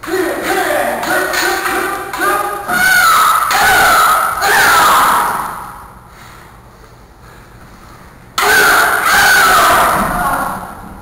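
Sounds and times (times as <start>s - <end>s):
loud shouting voices: 0.0s - 5.9s, 8.4s - 11.0s.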